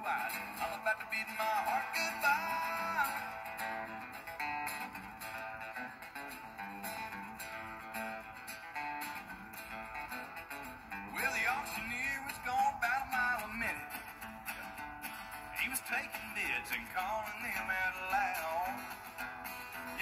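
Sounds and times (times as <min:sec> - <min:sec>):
man singing: 0:00.0 - 0:03.7, 0:11.1 - 0:14.2, 0:15.4 - 0:19.2, 0:19.8 - 0:20.0
acoustic guitars playing: 0:00.0 - 0:20.0.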